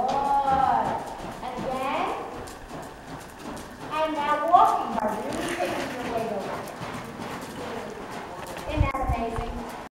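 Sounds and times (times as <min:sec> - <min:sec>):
horse hoofbeats on sand: 0:00.0 - 0:09.9.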